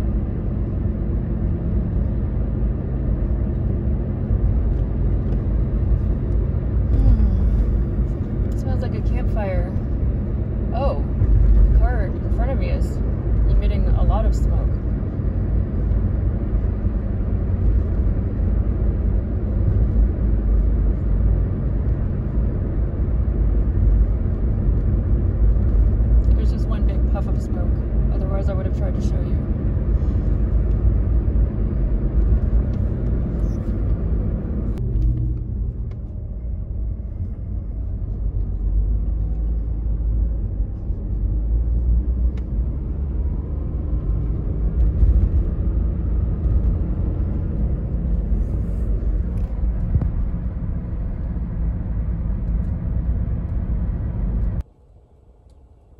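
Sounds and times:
car engine and road noise: 0:00.0 - 0:55.9.

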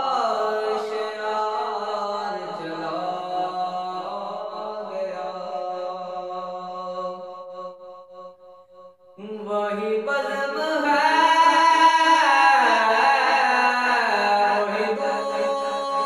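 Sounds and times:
man singing unaccompanied: 0:00.0 - 0:07.7, 0:09.2 - 0:16.0.

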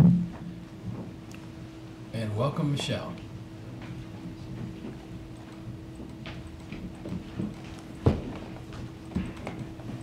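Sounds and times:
steady low hum: 0:00.0 - 0:10.0
footsteps and chair knocks: 0:06.0 - 0:10.0.

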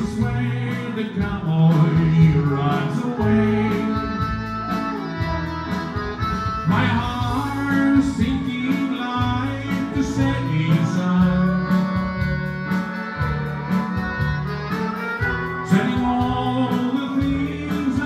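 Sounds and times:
accordion: 0:00.0 - 0:18.0
bass line: 0:00.0 - 0:18.0
steady beat: 0:00.0 - 0:18.0
steel guitar melody: 0:00.0 - 0:18.0.

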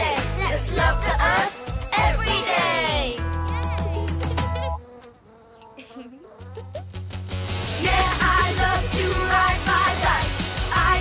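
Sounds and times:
cartoon bee buzzing: 0:00.8 - 0:11.0.

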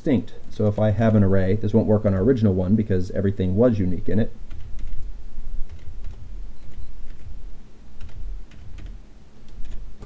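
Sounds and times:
low background hum: 0:00.0 - 0:10.0
computer keyboard typing: 0:04.5 - 0:05.1, 0:05.7 - 0:07.3, 0:08.0 - 0:09.9.

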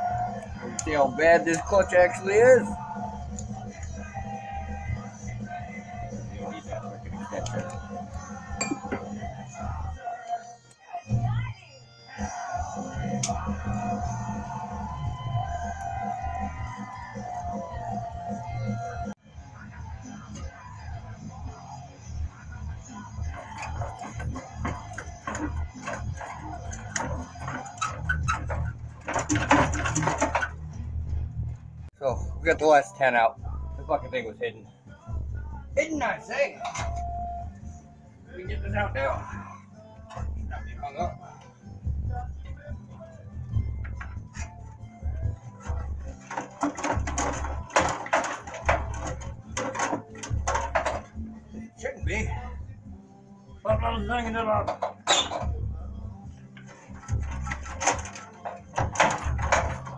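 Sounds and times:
music with singing voice: 0:00.0 - 0:59.9
hand tools clinking on metal: 0:08.6 - 0:09.2.

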